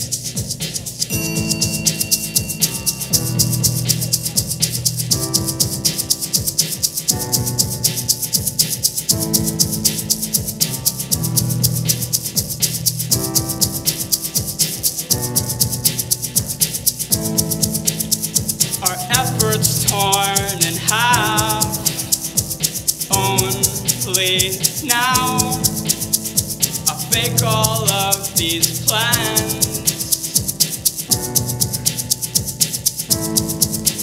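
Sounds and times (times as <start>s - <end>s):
bass line: 0.0s - 34.0s
hand shaker rhythm: 0.0s - 34.0s
keyboard chords: 0.0s - 34.0s
person singing sliding notes: 18.6s - 30.5s.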